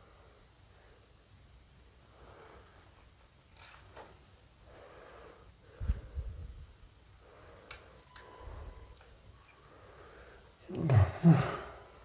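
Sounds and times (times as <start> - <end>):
person breathing out heavily: 4.6 - 6.6, 9.6 - 10.6.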